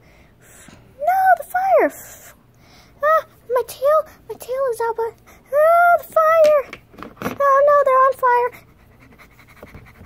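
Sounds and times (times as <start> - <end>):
child making high-pitched sounds: 1.0 - 2.4, 3.0 - 6.7, 7.4 - 8.6.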